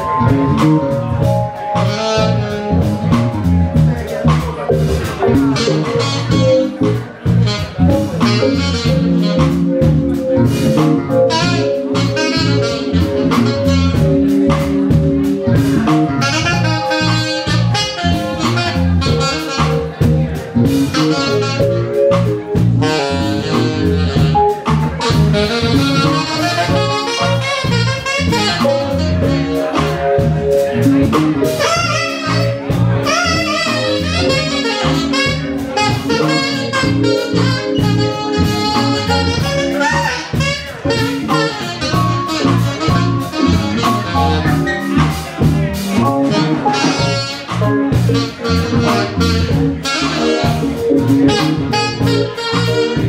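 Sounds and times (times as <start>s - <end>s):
drum kit: 0.0s - 53.0s
electric bass groove: 0.0s - 53.0s
saxophone solo: 0.0s - 53.0s.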